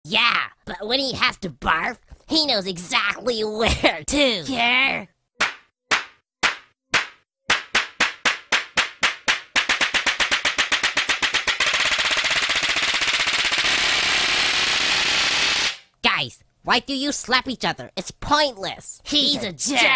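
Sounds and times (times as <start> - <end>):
cartoon slap sound effects: 5.4 - 13.6.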